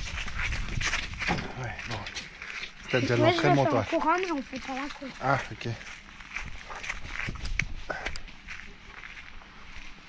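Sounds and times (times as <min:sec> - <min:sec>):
bare feet walking on gravel: 0:00.0 - 0:10.0.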